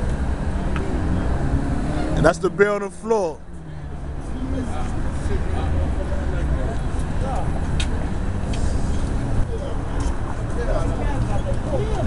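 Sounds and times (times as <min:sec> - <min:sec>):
city street rumble: 0:00.0 - 0:12.0.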